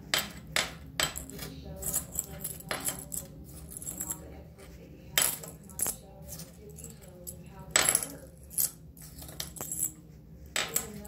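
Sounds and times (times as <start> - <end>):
metal tag and chain clinking: 1.0 - 4.3, 5.2 - 10.0.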